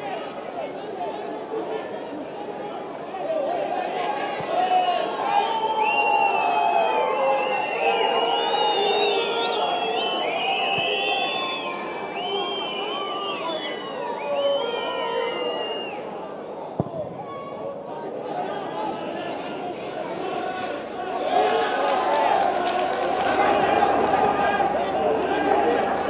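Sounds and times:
crowd whistling and shouting: 3.4s - 17.7s, 18.7s - 26.0s.

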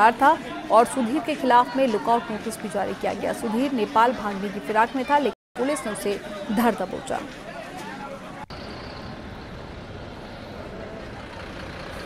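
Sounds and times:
faint voices: 0.0s - 8.6s
traffic noise: 0.0s - 12.0s.

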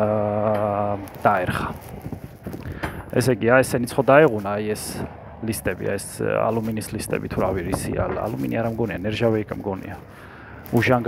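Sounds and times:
man speaking: 0.0s - 1.8s, 3.1s - 10.1s, 10.7s - 11.0s.

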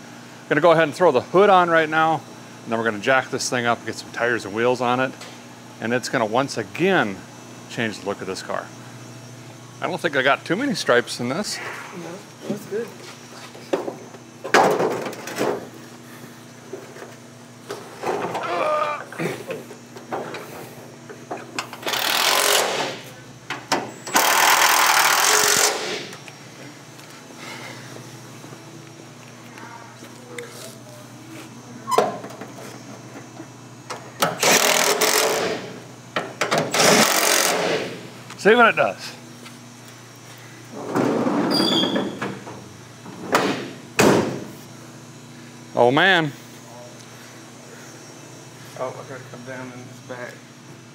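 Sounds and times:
power tool fastening bolts: 21.8s - 23.0s, 24.1s - 26.2s, 34.2s - 35.6s, 36.4s - 37.9s.

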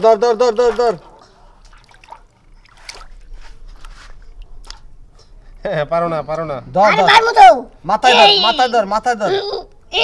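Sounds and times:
hand splashing in water: 0.5s - 4.9s
man shouting: 8.0s - 9.5s.

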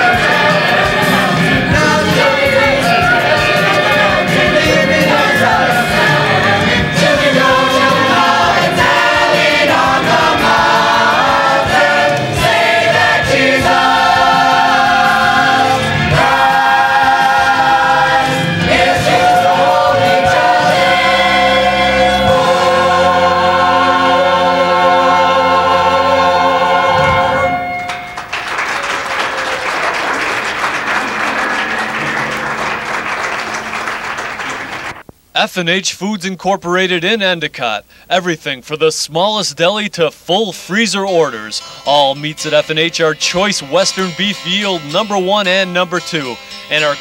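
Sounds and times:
choir singing: 0.0s - 35.0s.

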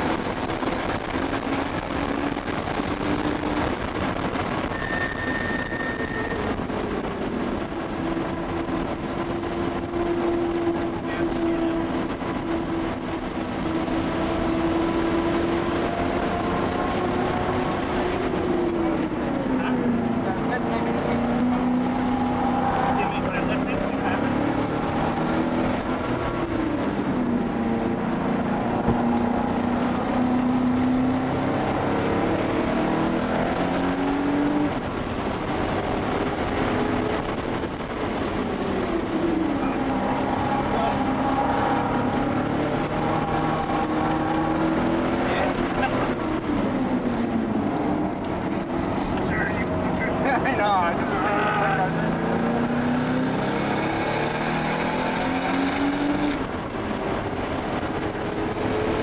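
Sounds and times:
car engine running hard: 0.0s - 59.0s.

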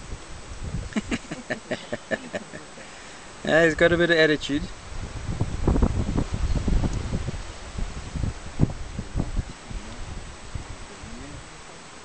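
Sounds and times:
wind buffeting microphone: 0.0s - 1.3s, 3.7s - 11.6s.

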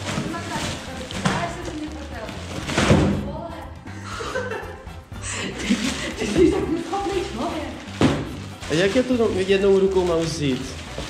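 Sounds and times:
plastic bags rustling: 0.0s - 3.5s, 5.3s - 11.0s
background music: 0.0s - 11.0s.

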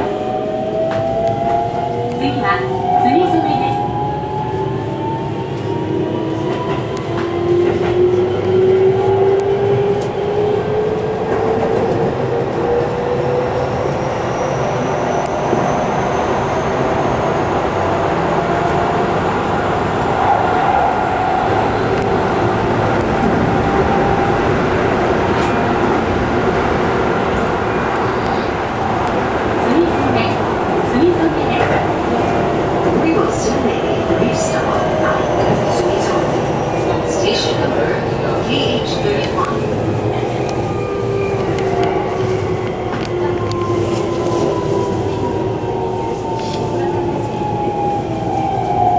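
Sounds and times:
rail clicks: 25.0s - 44.9s.

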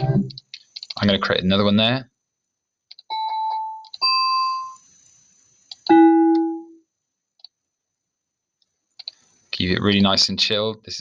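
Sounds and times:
bell synth notes: 5.9s - 6.7s
faint mouse clicks: 8.6s - 9.2s.

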